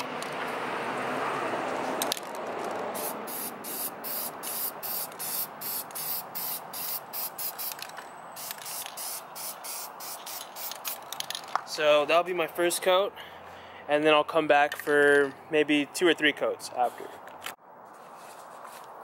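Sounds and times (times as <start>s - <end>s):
aerosol spray paint hissing: 3.0s - 7.8s, 8.4s - 11.0s.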